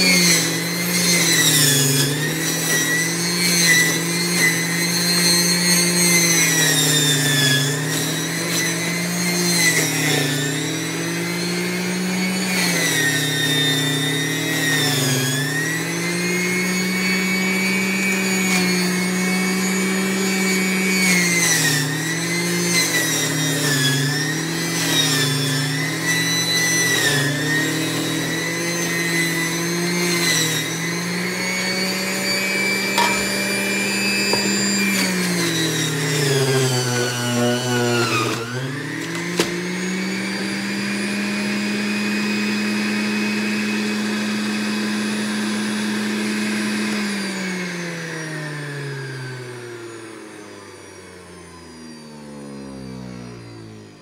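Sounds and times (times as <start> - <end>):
juicer motor whining: 0.0 - 54.0.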